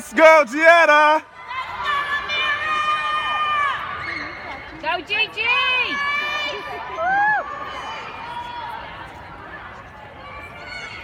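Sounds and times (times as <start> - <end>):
people cheering: 0.0 - 9.0.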